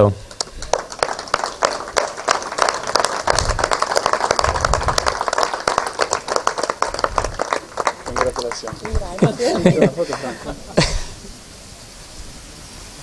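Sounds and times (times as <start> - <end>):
audience applauding: 0.0 - 11.1.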